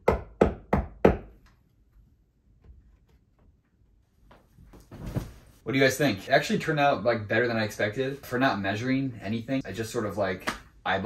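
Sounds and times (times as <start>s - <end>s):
hammer striking a nail: 0.0s - 1.4s.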